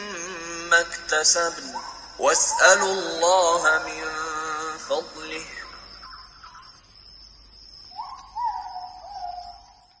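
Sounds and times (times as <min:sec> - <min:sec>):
bird whistled call: 0:07.9 - 0:10.0.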